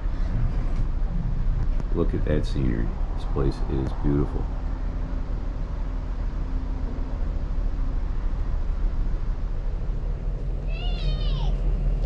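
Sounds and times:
faint hum: 0.0 - 12.0
low outdoor rumble: 0.0 - 12.0.

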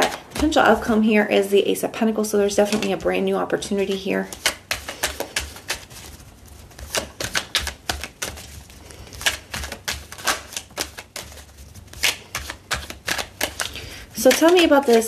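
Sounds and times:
cards being shuffled: 2.5 - 15.0.

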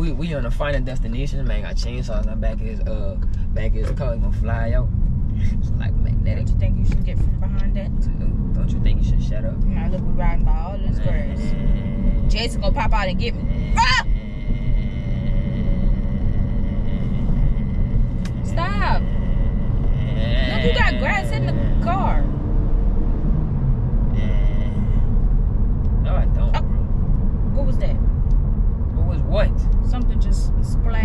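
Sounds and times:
person speaking: 0.0 - 22.3
car road and engine rumble: 0.0 - 31.0.

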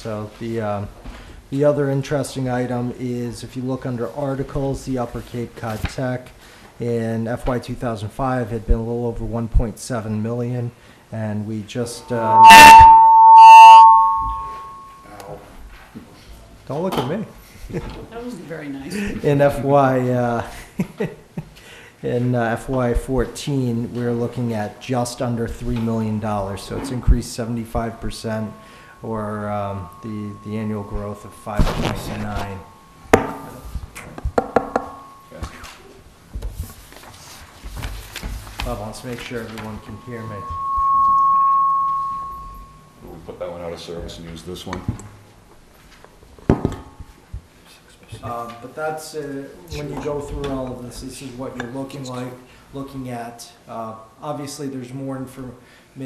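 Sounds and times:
microphone feedback ringing: 11.9 - 15.1, 28.1 - 33.1, 39.3 - 43.0
chime-like burst: 12.0 - 15.1, 28.4 - 33.0, 39.5 - 43.0.

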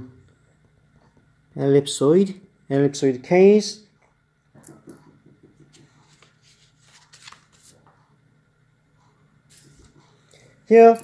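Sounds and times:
low steady hum: 0.0 - 11.0
faint rustling scratches: 5.7 - 8.0.

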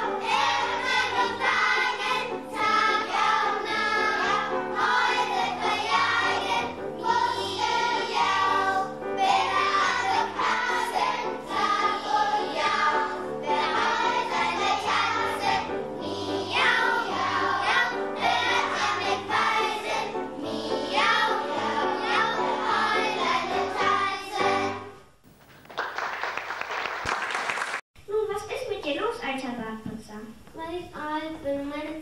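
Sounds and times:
children's choir singing: 0.0 - 25.0.

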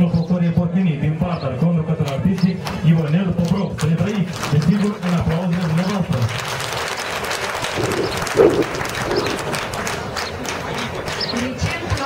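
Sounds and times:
crowd applauding: 2.6 - 12.0.

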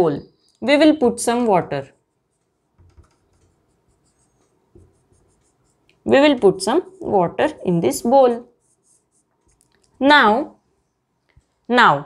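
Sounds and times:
marker strokes on whiteboard: 1.8 - 11.6.

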